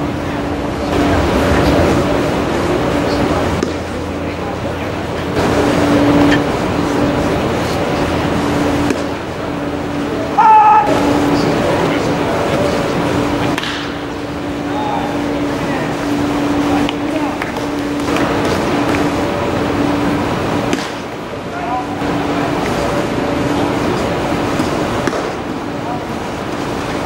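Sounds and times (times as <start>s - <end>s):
indistinct chatter: 0.0s - 27.0s
steady background hum: 0.0s - 27.0s.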